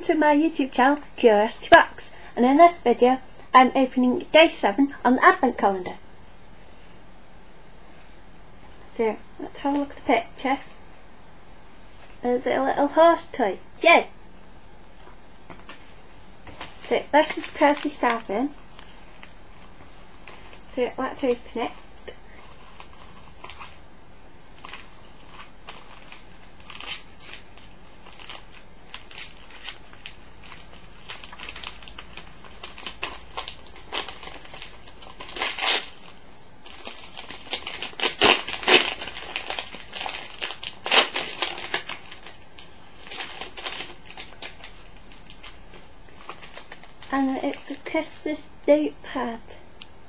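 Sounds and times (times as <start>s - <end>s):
wrapping paper crinkling and tearing: 16.5s - 21.7s, 22.3s - 23.8s, 24.5s - 48.4s.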